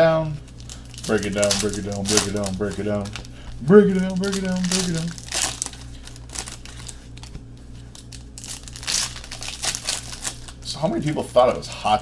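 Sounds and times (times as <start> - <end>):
low electrical hum: 0.0 - 12.0
foil pack crinkling: 0.4 - 12.0.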